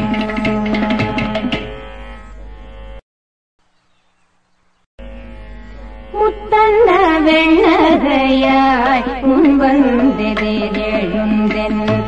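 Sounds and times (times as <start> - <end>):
devotional song drone notes: 5.0 - 11.8.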